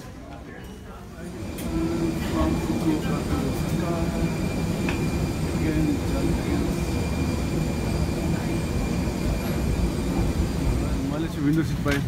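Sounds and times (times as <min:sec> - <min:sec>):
murmuring voices: 0:00.0 - 0:11.1
airliner low rumble: 0:01.3 - 0:11.4.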